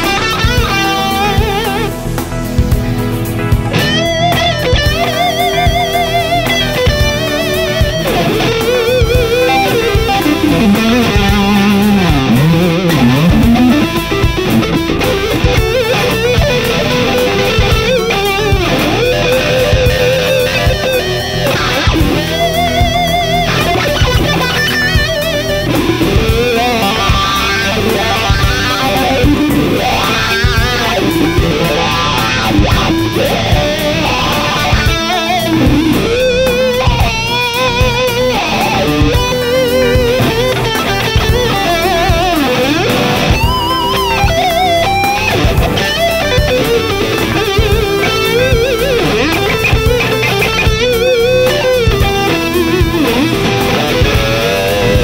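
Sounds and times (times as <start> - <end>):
backing track with bass and drums: 0.0 - 55.0
electric guitar lead with vibrato: 0.0 - 55.0.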